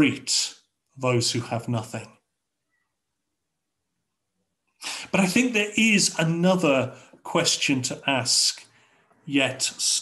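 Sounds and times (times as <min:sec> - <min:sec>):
man speaking: 0:00.0 - 0:02.2, 0:04.8 - 0:10.0
man's sharp intake of breath: 0:04.8 - 0:05.2.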